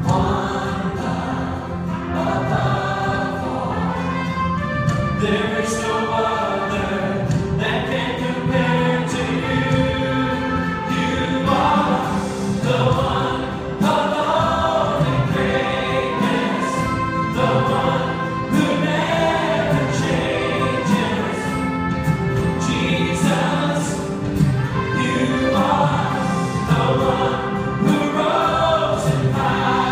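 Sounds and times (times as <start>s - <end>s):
band with acoustic guitar: 0.0s - 29.9s
choir singing worship song: 0.0s - 29.9s.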